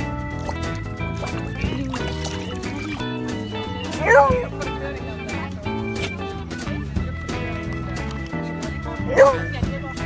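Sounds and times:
background music: 0:00.0 - 0:10.0
dog yelping bark: 0:04.0 - 0:04.5.

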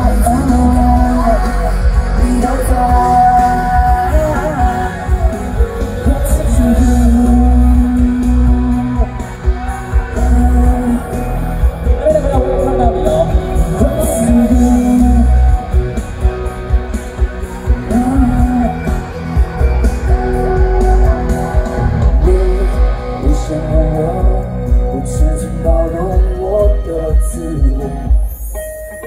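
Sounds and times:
live band playing pop: 0:00.0 - 0:29.0
man singing: 0:00.0 - 0:29.0.

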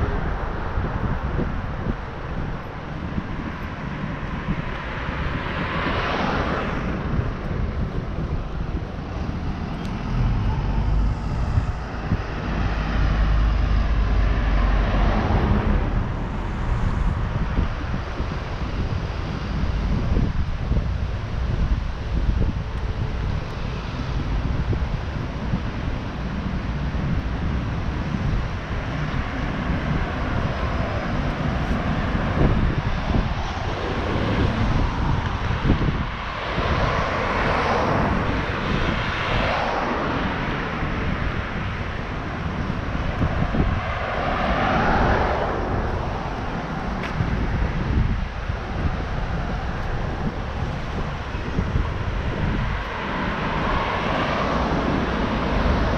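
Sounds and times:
street traffic rumble: 0:00.0 - 0:55.9
vehicles passing: 0:00.0 - 0:55.9
wind buffeting microphone: 0:00.0 - 0:55.9.

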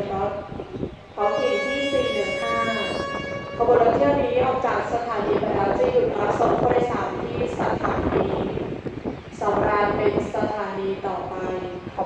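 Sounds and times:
voices: 0:00.0 - 0:08.7, 0:09.3 - 0:12.0
train horn blast: 0:01.2 - 0:04.3.

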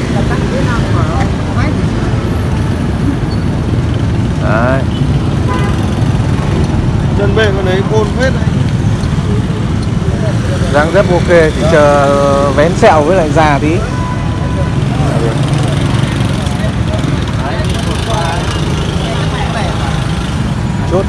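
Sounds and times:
people's voices: 0:00.0 - 0:03.5, 0:06.6 - 0:21.0
street traffic rumble: 0:00.0 - 0:21.0.

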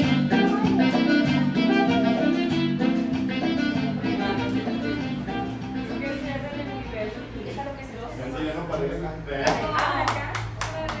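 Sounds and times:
hands clapping: 0:09.4 - 0:11.0.

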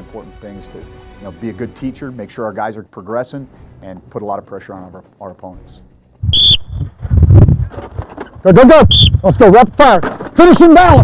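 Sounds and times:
sharp whistle blast: 0:06.2 - 0:06.9, 0:08.8 - 0:09.3.

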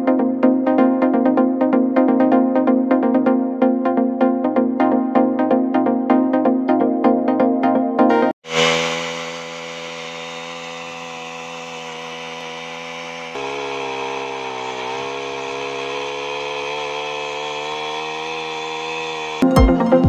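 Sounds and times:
earth auger engine running: 0:08.4 - 0:19.5.

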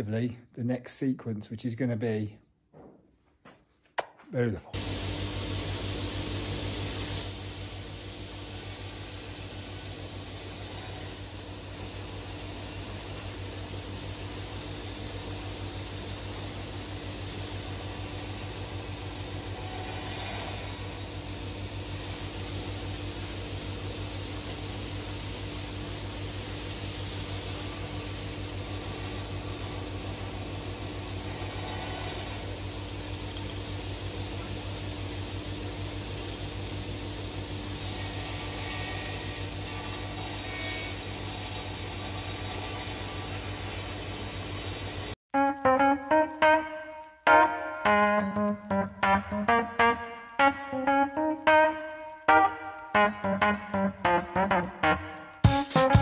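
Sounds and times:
panel saw and dust extraction running: 0:37.6 - 0:45.2.

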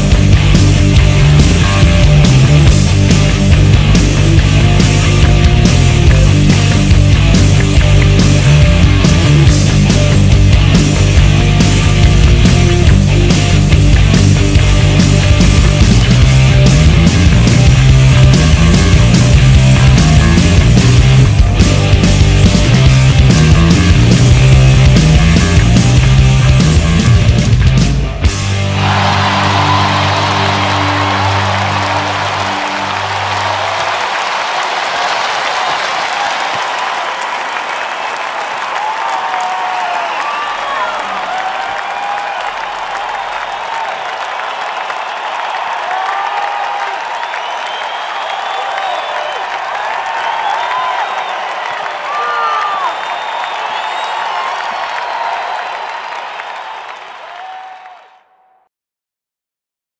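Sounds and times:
audience applauding and cheering: 0:00.0 - 0:58.7
whistles from crowd: 0:39.6 - 0:41.2, 0:41.9 - 0:58.6.

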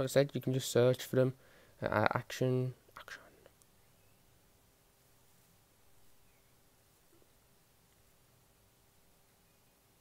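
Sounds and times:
breathy sound from speaker: 0:01.4 - 0:01.8.

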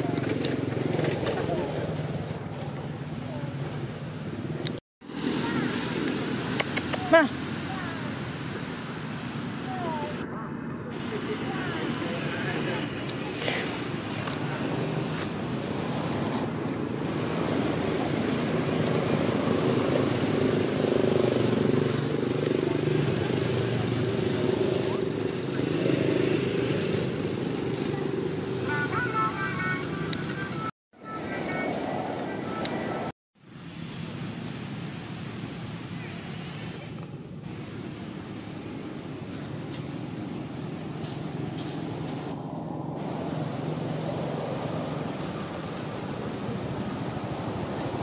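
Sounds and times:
vehicle engine rumbling: 0:00.0 - 0:48.0.

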